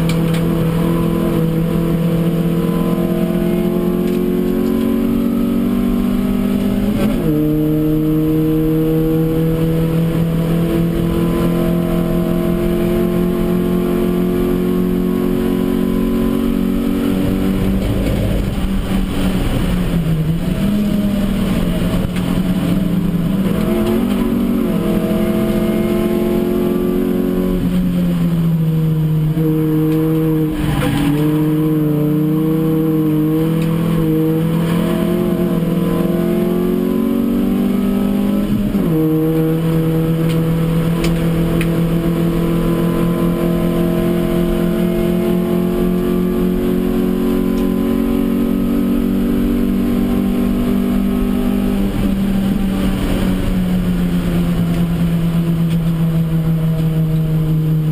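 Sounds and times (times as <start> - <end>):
race car engine under load: 0.0 - 57.9.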